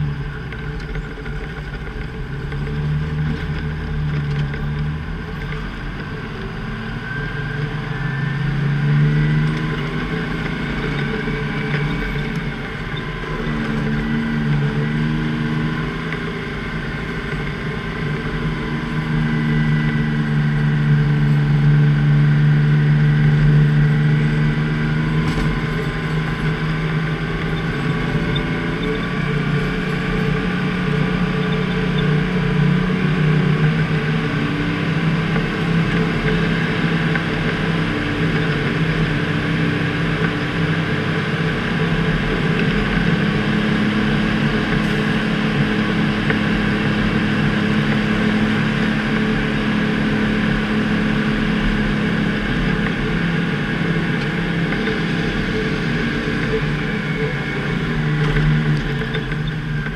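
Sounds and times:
diesel truck engine under load: 0.0s - 59.9s.

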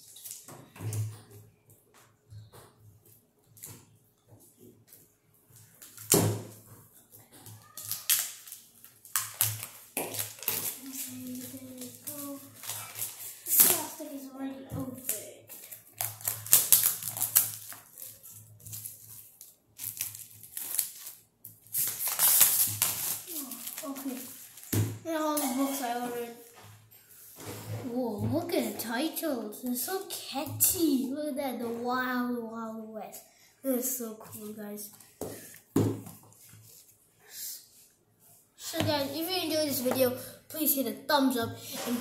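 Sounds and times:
plastic packaging crinkling: 7.7s - 14.0s, 15.5s - 24.7s.

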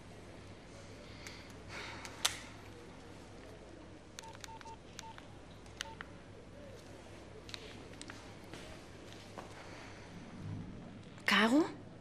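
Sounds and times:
phone keypad beeps: 4.2s - 5.2s, 5.8s - 6.0s.

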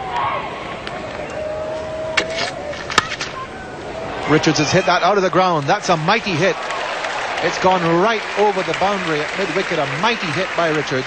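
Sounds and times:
murmur of stadium crowd: 0.0s - 11.0s.

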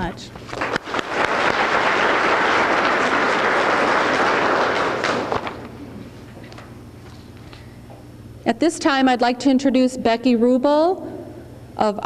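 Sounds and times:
audience applauding: 0.6s - 5.9s.

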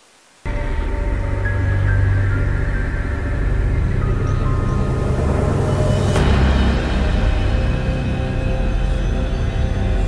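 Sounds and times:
background music with held tones: 0.4s - 10.0s
deep low drone: 0.5s - 10.0s.

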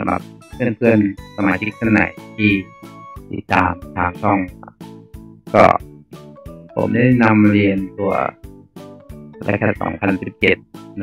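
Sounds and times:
man speaking: 0.0s - 4.7s, 5.5s - 5.8s, 6.8s - 8.4s
soft plucked guitar music: 0.0s - 5.8s.

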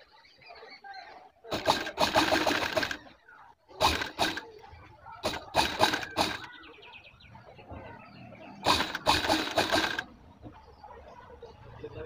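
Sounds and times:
sewing machine stitching: 1.5s - 3.0s, 3.8s - 4.6s, 5.2s - 6.5s, 8.6s - 10.1s.

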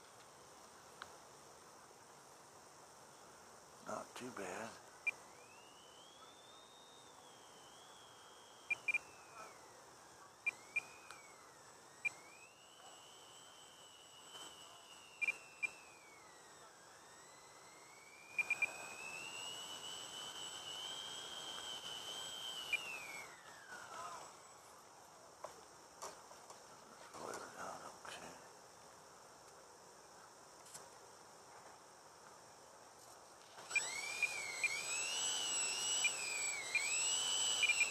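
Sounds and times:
electric motors whining: 3.1s - 26.6s, 33.4s - 37.9s
sharp clicks: 10.4s - 11.4s.

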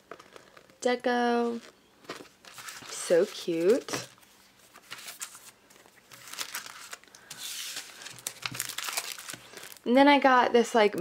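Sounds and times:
plastic sleeve crinkling: 0.0s - 9.9s.

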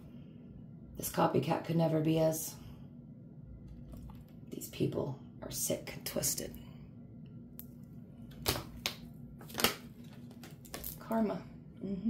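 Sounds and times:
cards snapping and flicking: 8.3s - 11.0s
deck of cards shuffled: 8.3s - 11.0s.

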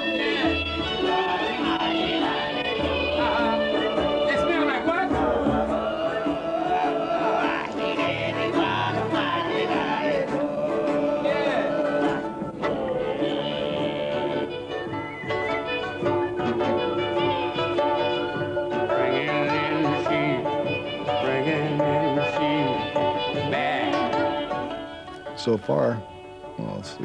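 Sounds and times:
throat singing with overtones: 0.0s - 25.4s
harp: 0.0s - 27.0s
plucked and bowed strings: 0.0s - 27.0s.

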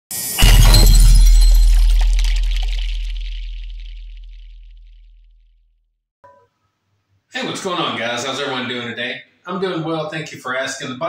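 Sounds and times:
bright shattering crash: 0.2s - 5.0s
deep bass boom: 0.4s - 5.2s.

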